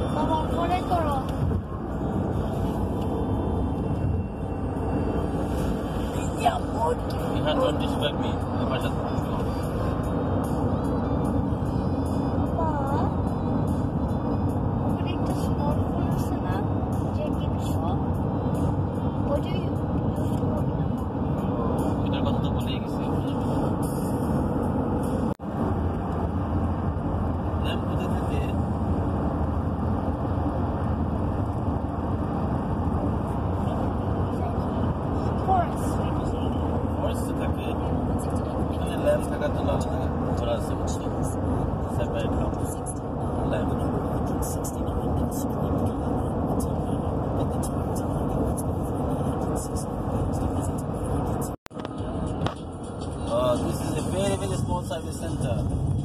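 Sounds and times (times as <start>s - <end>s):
road and engine noise in car: 0.0s - 56.0s.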